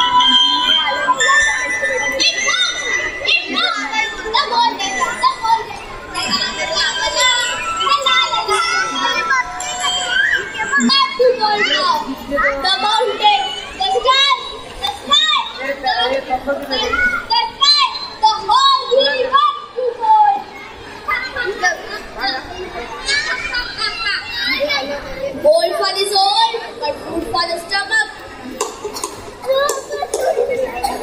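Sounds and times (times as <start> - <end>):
children chattering and calling out: 0.0 - 31.0.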